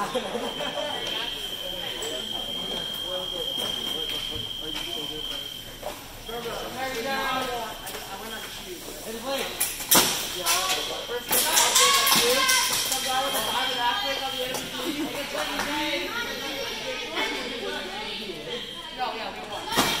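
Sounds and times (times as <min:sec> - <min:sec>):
voices: 0:00.0 - 0:20.0
fencing blades clashing: 0:09.6 - 0:13.6.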